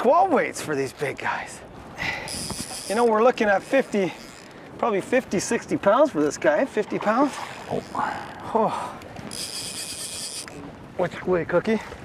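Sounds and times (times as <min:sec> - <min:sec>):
wind and water hiss: 0:00.0 - 0:12.0
fishing reel drag buzzing: 0:02.0 - 0:04.6, 0:07.4 - 0:08.4, 0:09.2 - 0:10.6.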